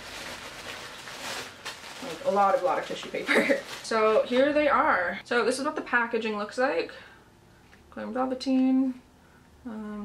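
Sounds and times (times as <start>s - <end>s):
paper crinkles: 0.0s - 4.5s
tissue paper rustling: 0.0s - 4.7s.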